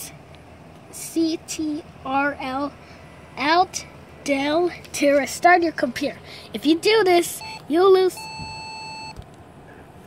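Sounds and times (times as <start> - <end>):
electronic beep: 7.4 - 7.6, 8.2 - 9.2.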